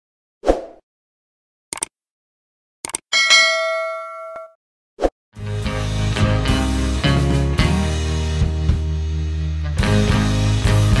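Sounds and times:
bright bell chime: 0:03.2 - 0:04.5.

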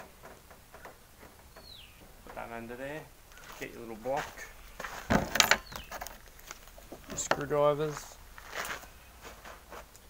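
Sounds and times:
bird chirp: 0:00.7 - 0:03.6, 0:04.4 - 0:07.5.

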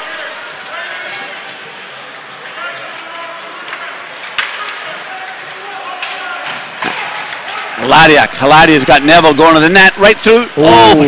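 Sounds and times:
murmur of crowd chatter: 0:00.0 - 0:11.0.

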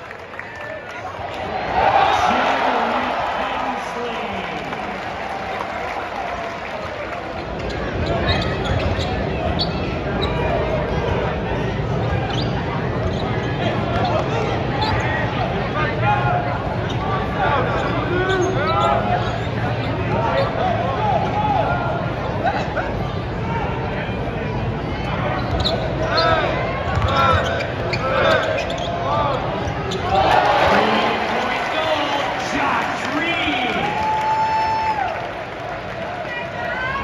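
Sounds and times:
crowd chatter: 0:00.0 - 0:37.0
sneaker squeaks: 0:07.4 - 0:10.6, 0:12.1 - 0:15.3, 0:16.8 - 0:20.6, 0:25.2 - 0:30.2.

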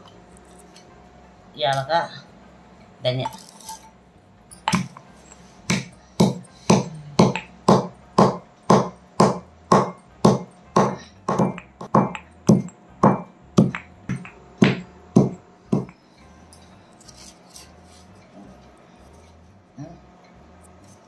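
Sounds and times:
stone pestle pounding in mortar: 0:04.7 - 0:05.0, 0:05.7 - 0:16.0.

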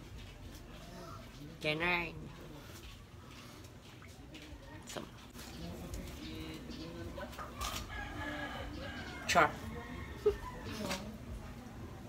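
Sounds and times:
rooster crowing: 0:07.9 - 0:11.0.

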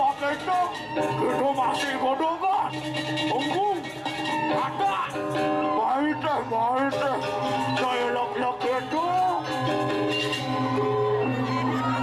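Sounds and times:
gamelan ensemble playing: 0:02.6 - 0:12.0.

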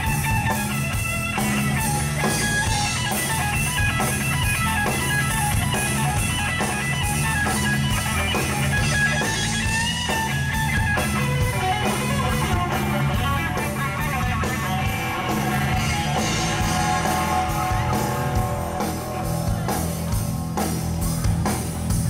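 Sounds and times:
electric guitar solo: 0:00.0 - 0:20.4
bass guitar: 0:00.0 - 0:22.0
drums: 0:00.0 - 0:22.0.

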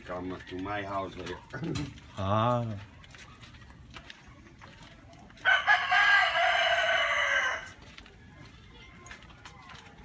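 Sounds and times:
rooster crowing: 0:05.4 - 0:07.8.

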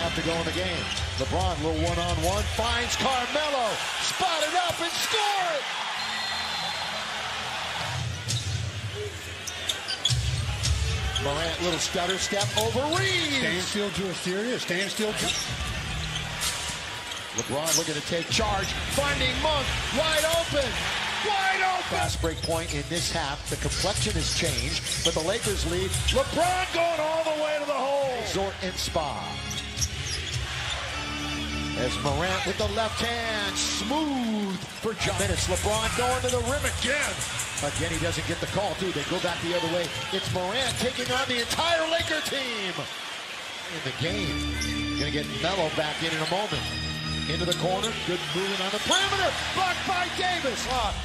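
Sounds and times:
crowd cheering: 0:00.0 - 0:22.3, 0:26.1 - 0:29.1, 0:30.0 - 0:51.0
sneakers squeaking: 0:00.8 - 0:01.7, 0:07.9 - 0:13.6, 0:14.9 - 0:19.1, 0:22.3 - 0:22.8, 0:23.7 - 0:26.6, 0:29.2 - 0:31.7, 0:38.7 - 0:43.1, 0:44.2 - 0:49.6.

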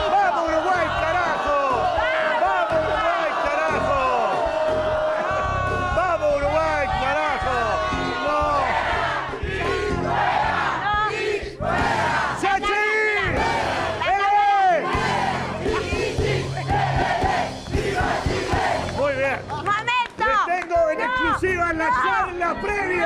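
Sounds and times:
music with bass line: 0:00.0 - 0:12.5, 0:13.2 - 0:20.5
crowd shouting and chanting: 0:00.0 - 0:23.0.

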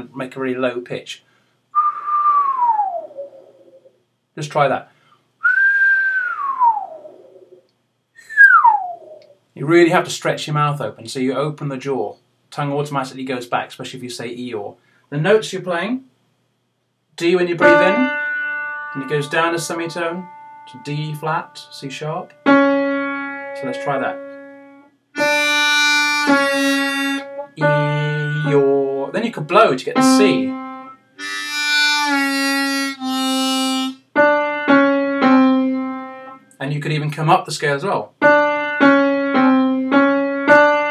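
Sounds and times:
person whistling falling notes: 0:01.8 - 0:03.8, 0:05.4 - 0:07.6, 0:08.2 - 0:09.2, 0:25.4 - 0:27.3
harmonica note bending: 0:17.2 - 0:29.0, 0:29.9 - 0:36.4
piano notes: 0:17.4 - 0:36.4, 0:38.2 - 0:40.9.

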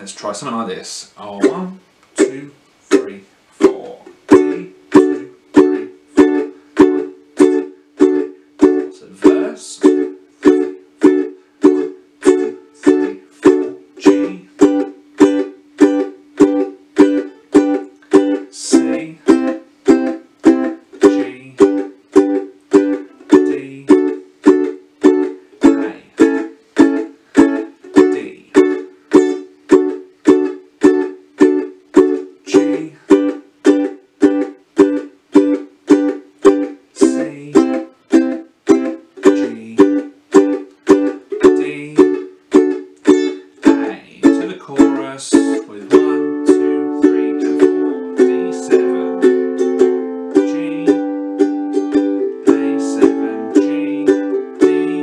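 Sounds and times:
ukulele strumming: 0:00.0 - 0:55.0.

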